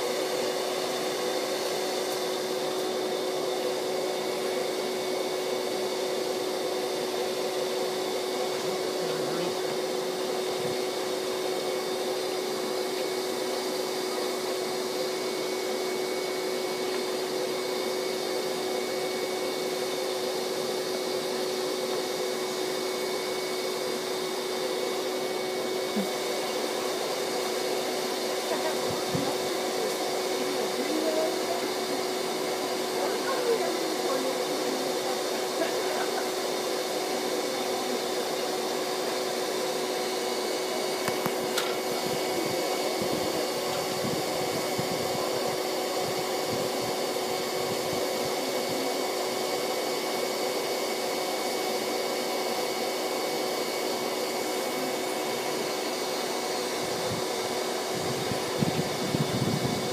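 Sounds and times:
vacuum motor humming: 0:00.0 - 0:59.9.

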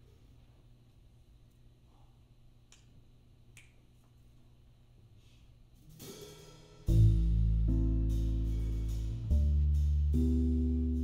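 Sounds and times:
finger snaps: 0:02.7 - 0:03.8.

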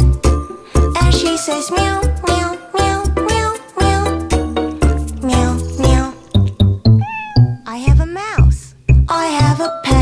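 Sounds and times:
children's song with drum beat: 0:00.0 - 0:06.8, 0:07.6 - 0:10.0
cat meowing: 0:06.9 - 0:07.7.

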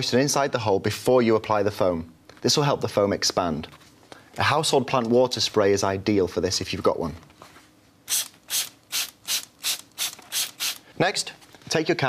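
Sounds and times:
spray bottle squirting water: 0:08.1 - 0:10.8.

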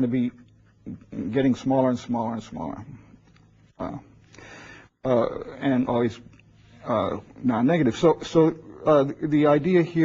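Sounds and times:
man speaking: 0:00.0 - 0:03.0, 0:03.7 - 0:04.2, 0:05.0 - 0:10.0
soft breath in: 0:04.3 - 0:04.9
man saying uh: 0:05.0 - 0:06.2.

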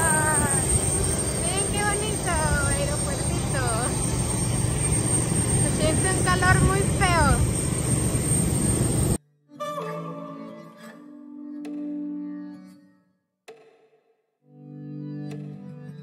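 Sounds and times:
voices: 0:00.0 - 0:07.5
jet aircraft engine rumble and whine: 0:00.0 - 0:09.2.

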